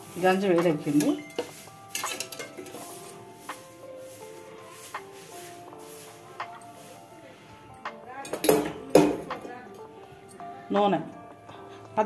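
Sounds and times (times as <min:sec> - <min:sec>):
metal cookware clanking: 0:00.2 - 0:03.3, 0:08.2 - 0:09.6.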